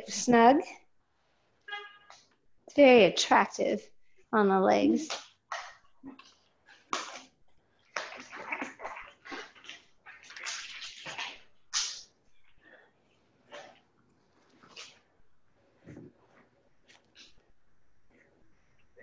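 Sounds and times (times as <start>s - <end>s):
exercise band rustling: 4.1s - 19.0s.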